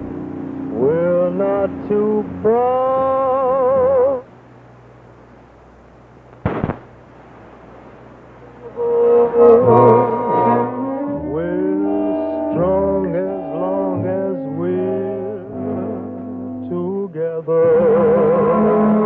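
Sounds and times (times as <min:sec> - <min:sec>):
tape hiss: 0:00.0 - 0:19.0
man singing with vibrato: 0:00.7 - 0:04.3, 0:08.6 - 0:19.0.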